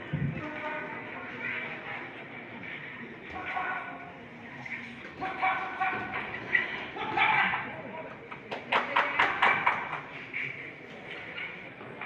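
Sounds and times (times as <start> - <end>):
murmur of voices: 0.0 - 12.0
crowd shouting and yelling: 5.1 - 8.0.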